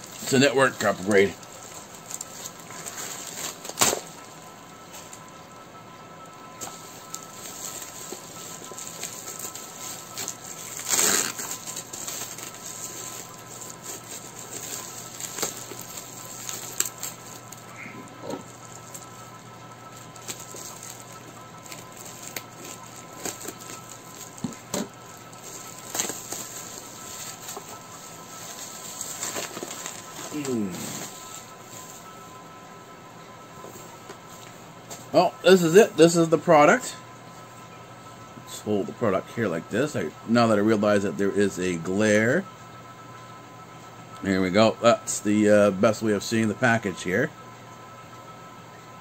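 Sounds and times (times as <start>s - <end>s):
cardboard rustling and crinkling: 0.0s - 5.3s, 6.6s - 32.2s
sharp crackles: 0.0s - 5.3s, 6.6s - 32.2s.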